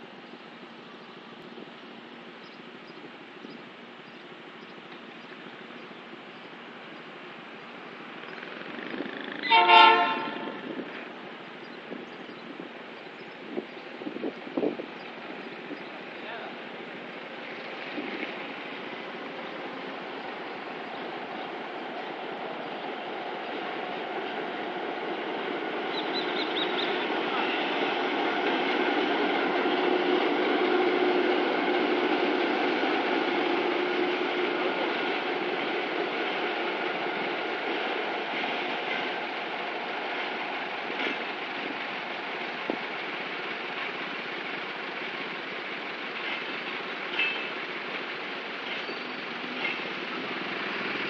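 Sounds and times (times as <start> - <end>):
distant diesel locomotive engine: 0.0 - 51.0
rail noise: 0.0 - 51.0
wind on microphone: 10.2 - 16.0.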